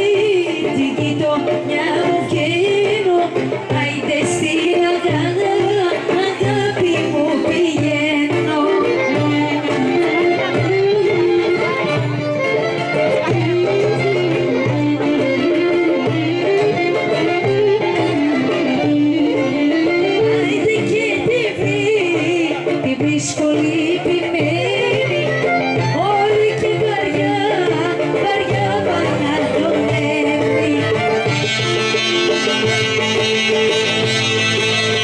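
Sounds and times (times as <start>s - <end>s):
folk band music: 0.0s - 35.0s.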